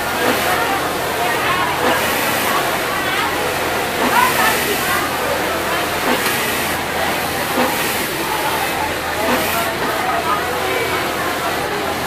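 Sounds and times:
industrial sewing machines running: 0:00.0 - 0:12.0.

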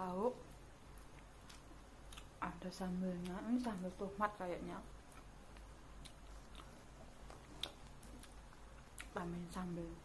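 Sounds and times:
close chewing: 0:05.1 - 0:09.3.

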